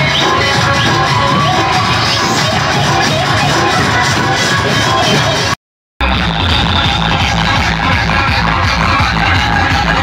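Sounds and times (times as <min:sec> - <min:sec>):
loud dance music: 0:00.0 - 0:10.0.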